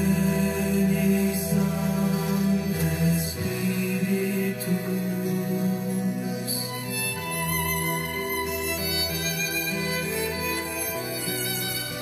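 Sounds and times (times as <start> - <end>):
sustained low accompaniment: 0.0 - 12.0.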